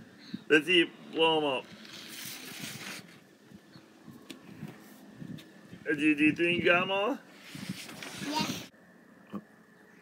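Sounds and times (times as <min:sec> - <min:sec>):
child blowing air: 0:07.4 - 0:08.7.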